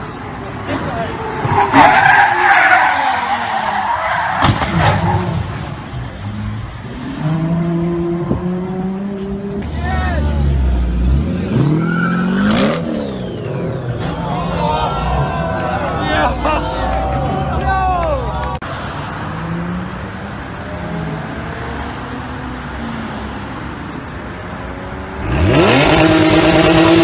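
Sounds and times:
car engines revving: 0.0s - 27.0s
tyres skidding: 0.0s - 27.0s.

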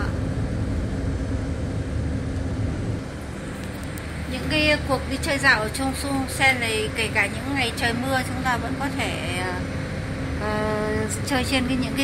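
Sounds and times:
boat engine rumble: 0.0s - 12.0s.

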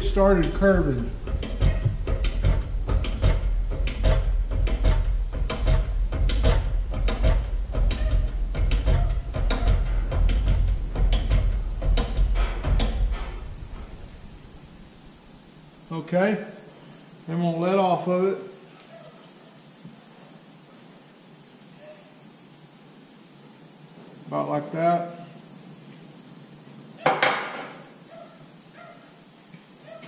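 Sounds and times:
hydraulic press rumble: 0.0s - 15.5s.

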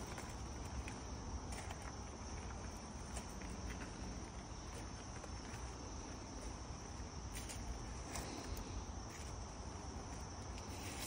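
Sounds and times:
footsteps on gravel: 0.0s - 9.4s
high-pitched insect chorus: 0.0s - 11.0s.

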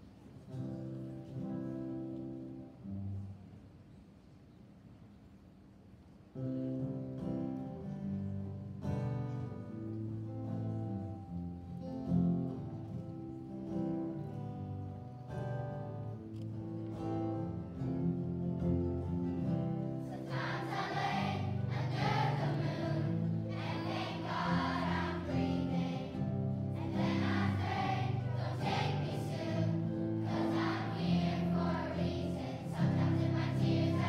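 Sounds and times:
acoustic guitars strumming: 6.6s - 34.0s
children's choir singing: 20.0s - 34.0s.

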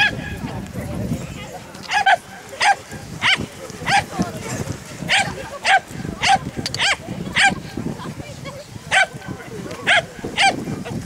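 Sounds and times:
dog barking: 1.9s - 4.1s, 5.1s - 7.6s, 8.9s - 9.2s, 9.8s - 10.6s.

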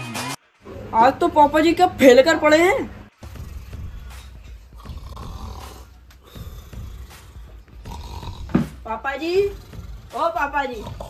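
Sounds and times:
man snoring: 3.2s - 8.7s, 9.4s - 10.2s, 10.8s - 11.0s.

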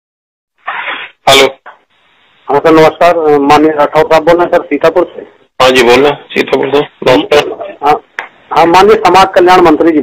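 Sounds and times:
person sneezing: 0.6s - 1.2s.

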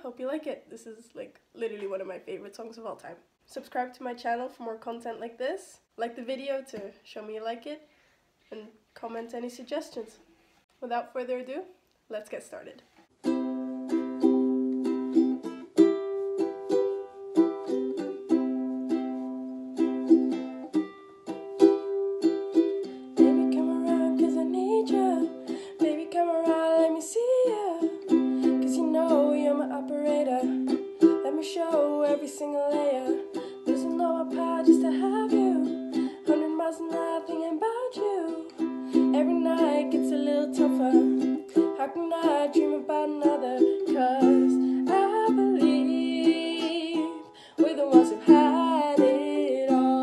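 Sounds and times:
ukulele strumming: 13.1s - 50.0s
woman singing: 23.2s - 50.0s.

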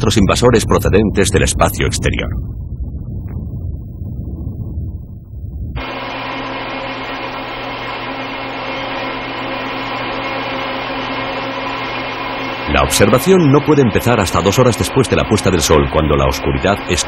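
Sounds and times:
low rumble: 0.0s - 8.0s
electronic equipment and fans humming: 0.0s - 17.0s.

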